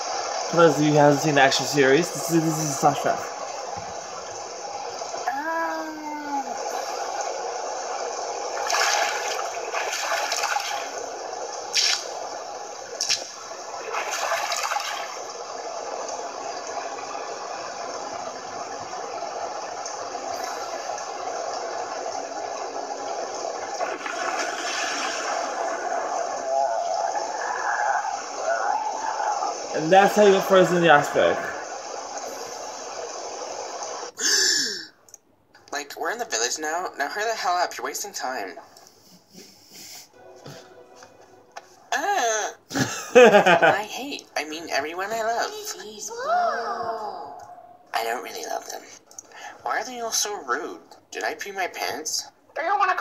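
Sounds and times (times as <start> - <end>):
rushing water and storm effects: 0.0 - 34.8, 42.7 - 50.4.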